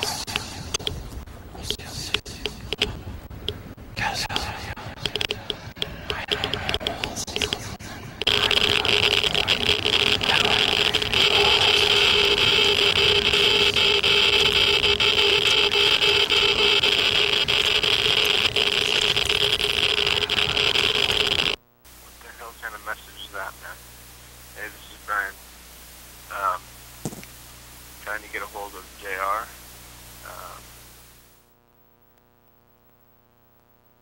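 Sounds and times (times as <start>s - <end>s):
dense radio-like noise: 0.0s - 34.0s
buried voices: 3.9s - 23.8s, 30.2s - 30.7s.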